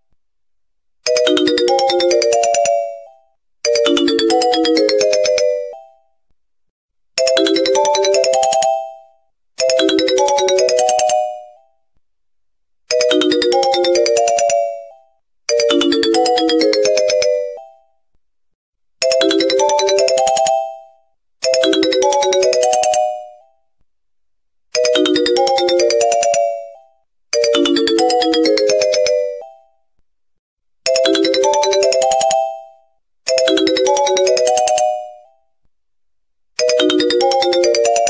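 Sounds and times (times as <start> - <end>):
bell-like ringtone chime melody: 1.1 - 6.1, 7.2 - 11.8, 12.9 - 18.0, 19.0 - 23.6, 24.8 - 29.8, 30.9 - 35.4, 36.6 - 38.0.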